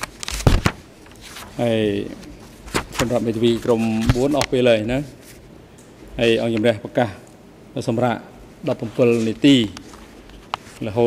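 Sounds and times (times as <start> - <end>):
man speaking: 1.6 - 2.3, 3.0 - 5.2, 6.2 - 9.8.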